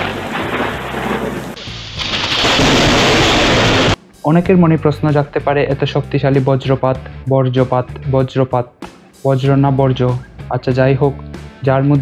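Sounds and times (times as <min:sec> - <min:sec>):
steady rain hiss: 0:00.0 - 0:04.0
thunder rumbling: 0:00.0 - 0:04.0.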